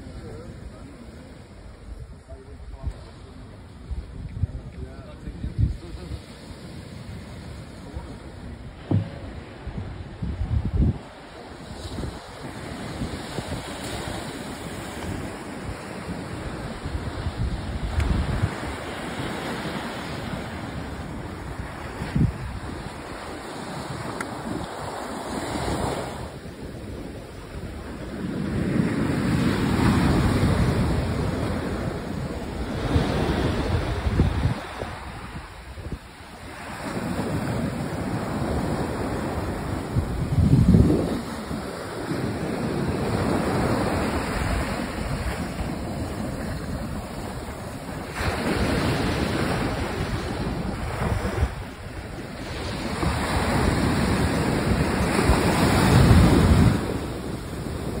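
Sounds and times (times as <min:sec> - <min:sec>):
ocean surf breaking on shore: 0:00.0 - 0:58.0
wind buffeting microphone: 0:00.0 - 0:58.0.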